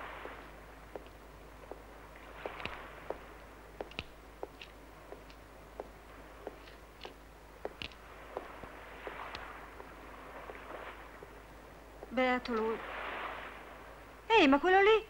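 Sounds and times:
light hiss: 0.0s - 15.0s
faint ticks: 12.0s - 12.7s.

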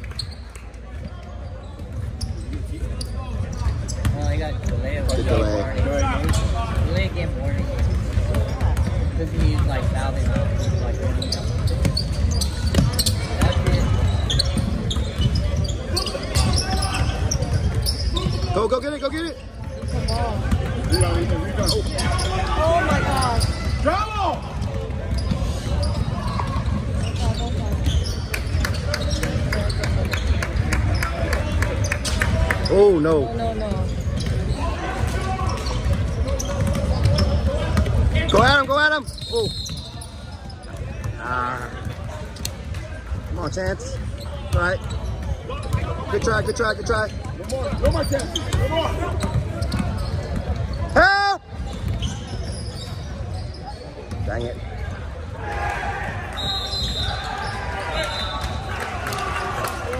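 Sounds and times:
high shoe squeals: 0.0s - 7.0s, 10.2s - 55.1s, 56.1s - 59.2s
rumble of gym hall: 0.0s - 59.9s
shouted voices: 55.3s - 59.9s.

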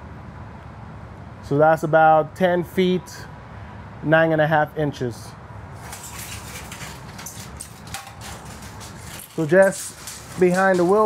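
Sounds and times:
tape measure handling noise: 5.8s - 11.0s.

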